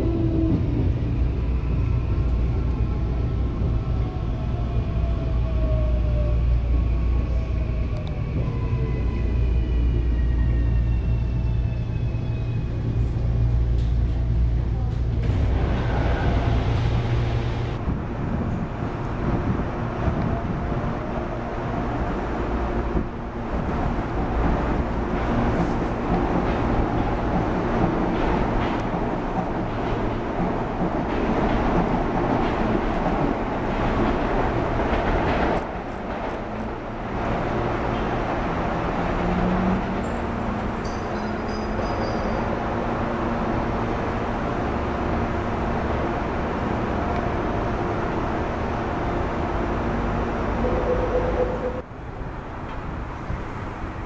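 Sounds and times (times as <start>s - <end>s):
train interior low hum: 0.0s - 54.0s
train wheels rumbling on rails: 0.0s - 54.0s.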